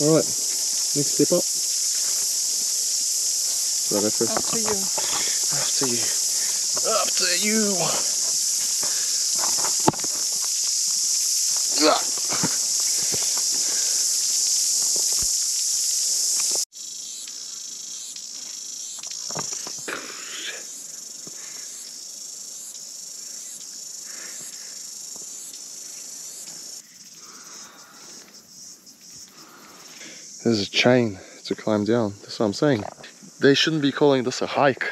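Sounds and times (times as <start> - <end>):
cicadas buzzing: 0.0 - 34.9
pulsing cicada song: 0.0 - 34.9
footsteps: 1.6 - 2.8, 3.4 - 7.2, 7.8 - 15.4.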